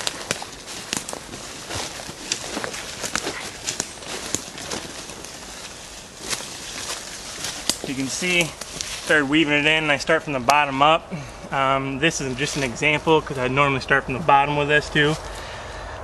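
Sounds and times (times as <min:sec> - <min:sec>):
twigs crackling and snapping: 0:00.0 - 0:10.8, 0:12.0 - 0:13.6
footsteps crunching through dry leaves: 0:00.0 - 0:10.9, 0:12.0 - 0:14.1, 0:14.8 - 0:15.6.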